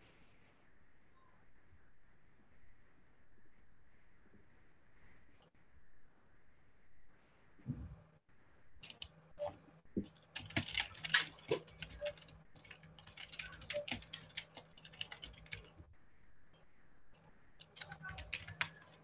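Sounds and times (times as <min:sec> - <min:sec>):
typing on computer keyboard: 0:08.8 - 0:15.9, 0:17.6 - 0:19.0.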